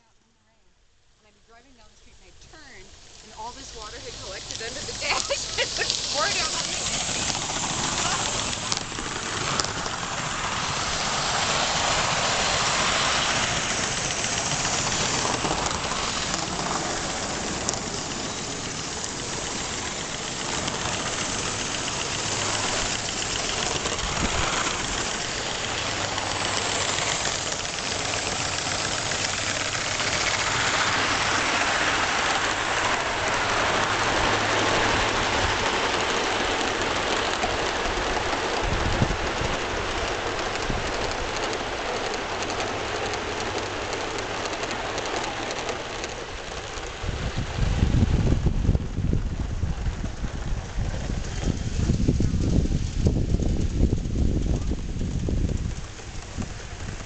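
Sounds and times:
model train rushing and rattling: 1.4 - 57.0.

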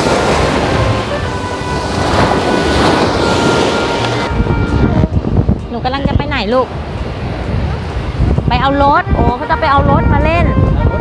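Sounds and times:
sea waves washing over sand: 0.0 - 9.7.

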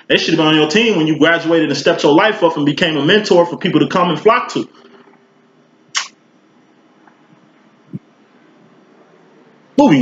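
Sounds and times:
sharp click: 5.9 - 6.2.

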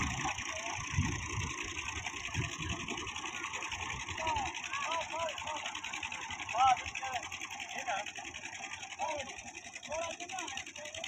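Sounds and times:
tractor diesel engine clattering: 0.0 - 11.0
men calling out: 3.1 - 11.0.

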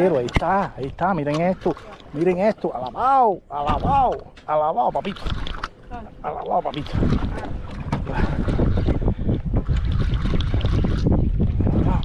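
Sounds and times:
open water noise: 0.0 - 12.0
wind buffeting microphone: 0.0 - 12.0.

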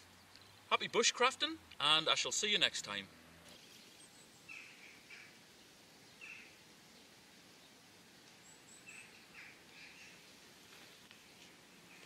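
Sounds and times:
quiet bird chirps: 0.0 - 0.7, 3.5 - 12.0
faint outdoor ambience: 0.0 - 12.0.

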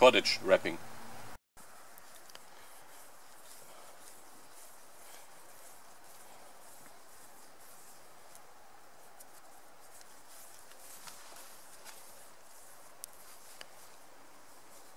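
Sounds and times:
outdoor background hiss: 0.0 - 14.9
cord winding soft ticks and rustles: 1.7 - 14.9.

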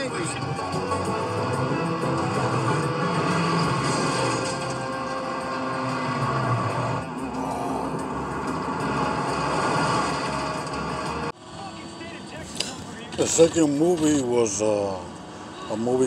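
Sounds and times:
film music: 0.0 - 11.4
vehicle engine: 0.0 - 16.0.

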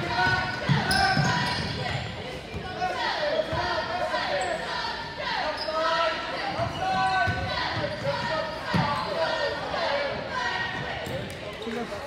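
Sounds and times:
crowd voices: 0.0 - 12.0
basketball bouncing: 0.1 - 1.9
sneakers squeaking on hardwood: 0.1 - 3.8, 5.5 - 9.3.

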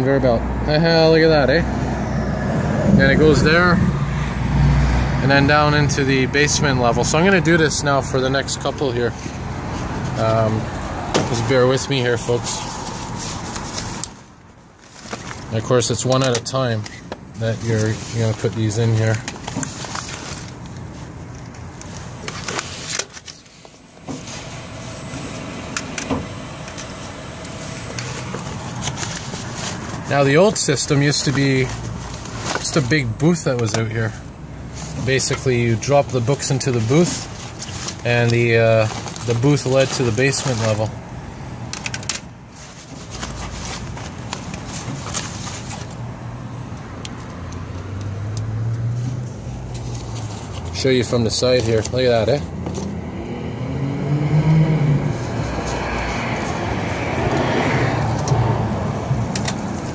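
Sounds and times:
conveyor motor humming: 23.9 - 29.3.

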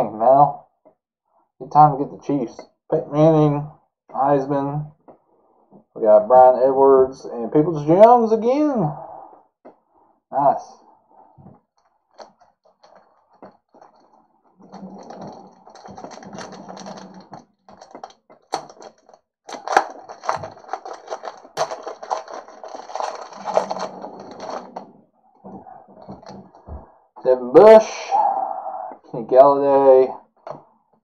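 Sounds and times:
foil wrapper crinkling: 14.7 - 24.8.

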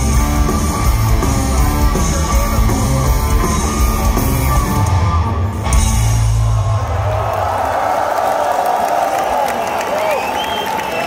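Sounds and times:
punk rock band playing: 0.0 - 6.8
crowd cheering and yelling: 0.0 - 11.0.

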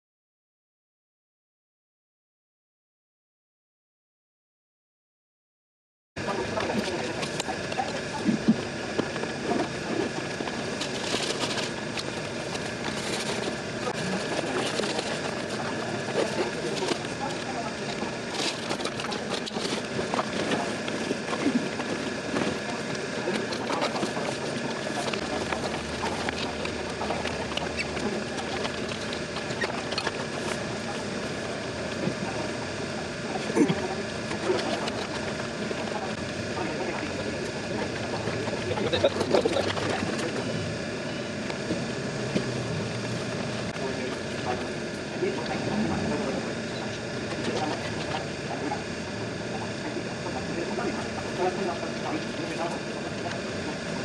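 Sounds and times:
people chatting in background: 6.2 - 54.0.

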